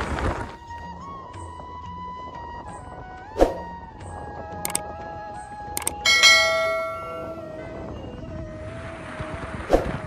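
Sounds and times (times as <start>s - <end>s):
bell ringing: 5.8s - 7.6s.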